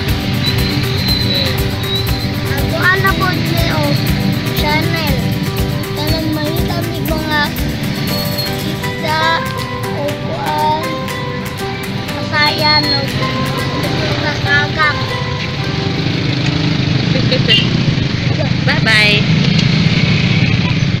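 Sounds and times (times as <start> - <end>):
background music: 0.0 - 19.4
street traffic rumble: 0.0 - 21.0.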